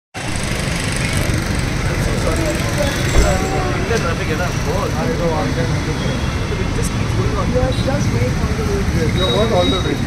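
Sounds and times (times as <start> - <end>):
traffic rumble: 0.2 - 10.0
people talking: 2.0 - 10.0
dull thump: 3.1 - 3.8.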